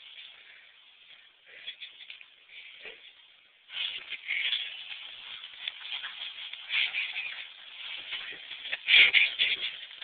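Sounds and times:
bodies scuffling on floor: 3.7 - 10.0.

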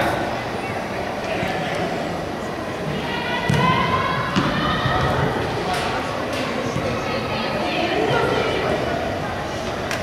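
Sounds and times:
echoing indoor hall din: 0.0 - 10.0.

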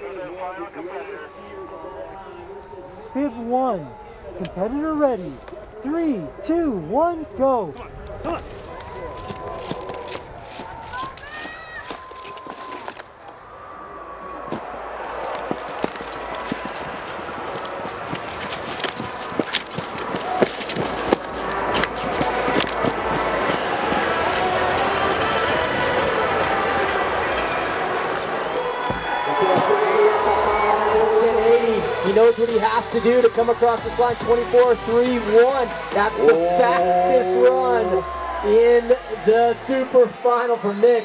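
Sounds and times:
crowd cheering and shouting: 0.0 - 41.0.

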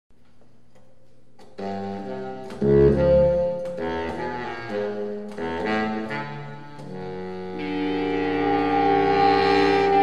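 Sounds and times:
horn saxophone and guitar chord: 5.6 - 10.0.

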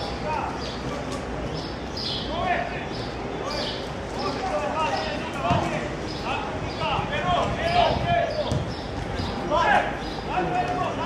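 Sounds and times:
players shouting: 2.2 - 11.0
football being kicked: 8.4 - 8.8.

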